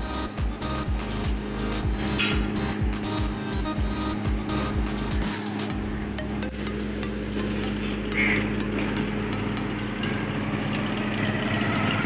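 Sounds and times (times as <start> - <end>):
small engine humming: 0.0 - 12.0.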